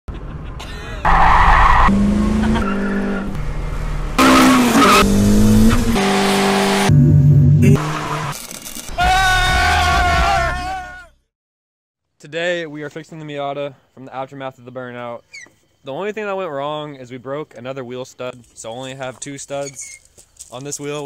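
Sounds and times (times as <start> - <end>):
car engine revving: 1.0 - 8.5
tyres squealing: 19.5 - 20.2.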